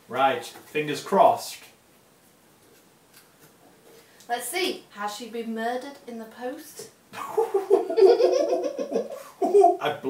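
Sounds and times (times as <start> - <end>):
hearty laughter: 7.2 - 9.8.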